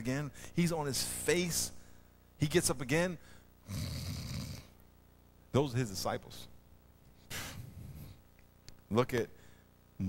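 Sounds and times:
man imitating a snore: 3.6s - 4.8s.

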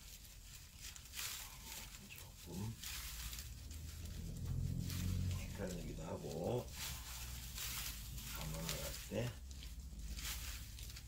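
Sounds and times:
paper rustling and crinkling: 0.0s - 11.0s.

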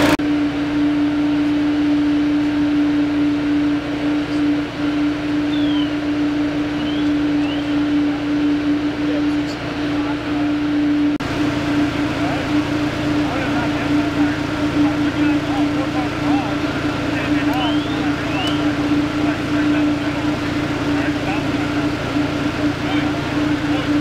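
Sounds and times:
fire engine humming: 0.0s - 24.0s
firefighters talking: 3.8s - 24.0s
indistinct voices: 6.7s - 24.0s.

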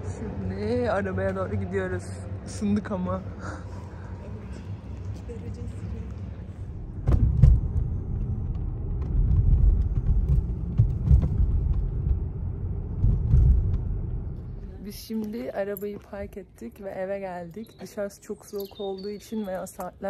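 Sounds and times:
car road and engine rumble: 0.0s - 16.6s.

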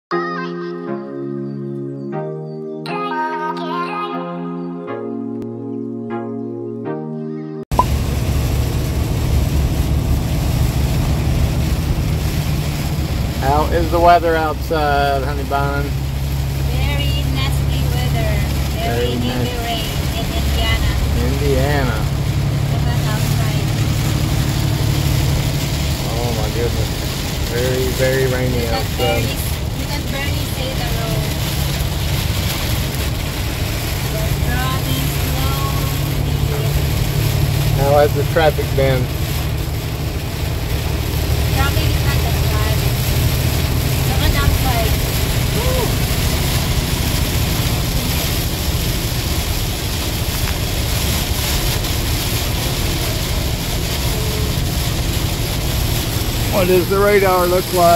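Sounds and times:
intro music: 0.7s - 3.5s, 4.2s - 8.4s
rain hiss: 7.7s - 57.9s
truck engine and road rumble: 7.7s - 57.9s.

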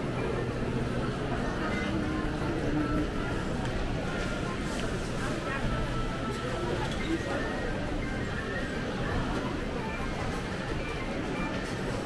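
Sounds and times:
crowd chatter indoors: 0.0s - 12.0s.

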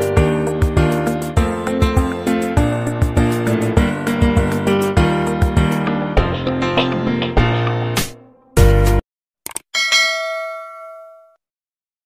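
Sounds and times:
bell ding: 9.8s - 11.4s.

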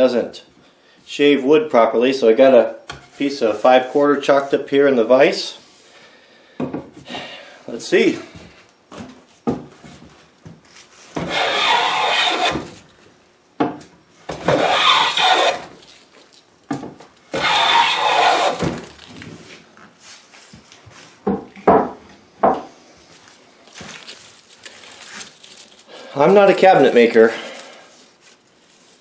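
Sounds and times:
hand plane shaving wood: 11.2s - 12.8s, 14.4s - 15.8s, 17.3s - 18.8s.

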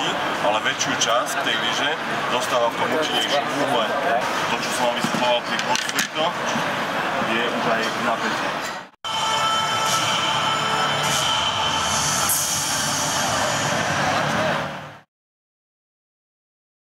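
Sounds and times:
background bustle: 0.0s - 15.0s.

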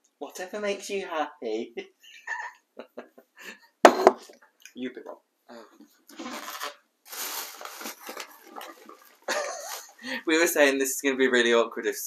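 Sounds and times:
paper and packaging rustling: 6.1s - 10.0s.

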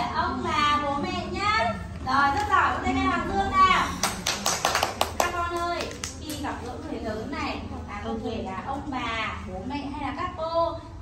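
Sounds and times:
woman's voice: 0.0s - 11.0s
hand clapping: 4.0s - 6.5s.

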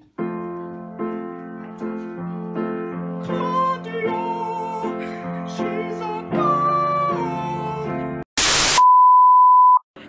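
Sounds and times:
piano chords: 0.0s - 8.2s.

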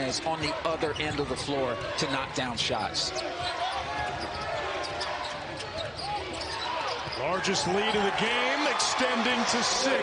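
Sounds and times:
arena crowd voices: 0.0s - 10.0s.

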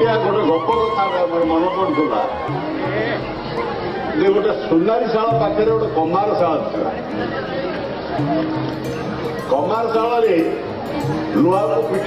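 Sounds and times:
man speaking over public address: 0.0s - 2.4s, 4.2s - 7.0s, 9.5s - 10.6s, 11.3s - 12.0s
music playing: 0.0s - 12.0s.

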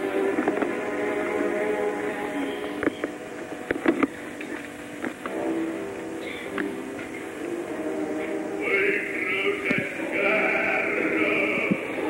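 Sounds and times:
orchestra sustained chords: 0.0s - 12.0s
recording hiss: 0.0s - 12.0s.

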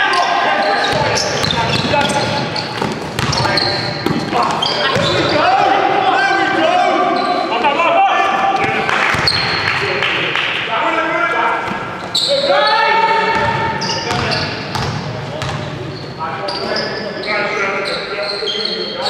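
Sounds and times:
players shouting: 0.0s - 9.8s, 10.6s - 14.5s
ball bouncing on court floor: 0.9s - 5.3s, 8.6s - 9.7s, 13.3s - 15.7s.

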